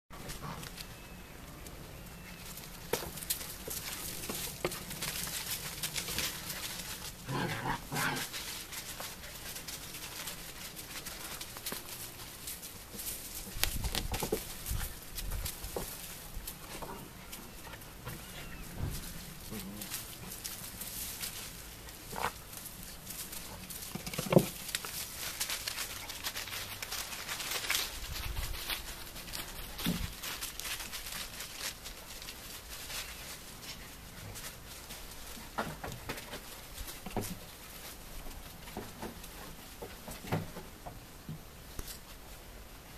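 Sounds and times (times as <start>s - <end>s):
paws scrabbling in dry leaves: 0.2s - 40.2s.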